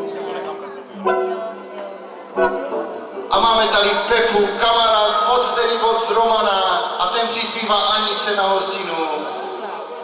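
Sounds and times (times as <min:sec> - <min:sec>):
voices talking in background: 0:00.0 - 0:03.4, 0:08.7 - 0:10.0.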